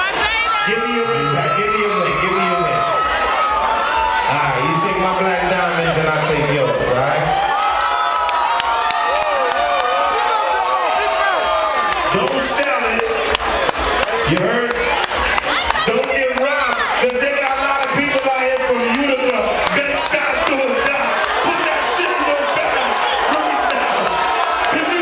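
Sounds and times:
crowd cheering and shouting: 0:00.0 - 0:25.0
man's voice: 0:00.7 - 0:03.0, 0:04.2 - 0:07.3, 0:12.1 - 0:13.2, 0:15.8 - 0:25.0.

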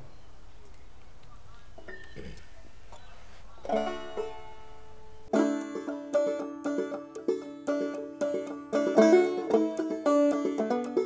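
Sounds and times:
banjo plucks: 0:03.6 - 0:11.0.

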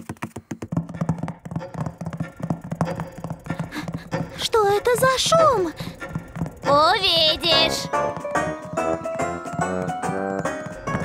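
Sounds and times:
low pulsing hum: 0:00.9 - 0:09.8
clock works clicking: 0:01.0 - 0:11.0.

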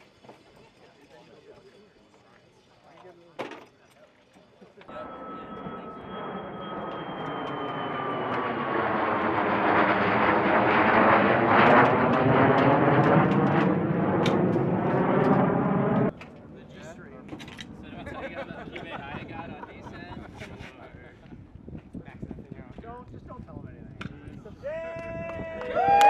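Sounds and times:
jet aircraft flying past: 0:04.9 - 0:19.3.

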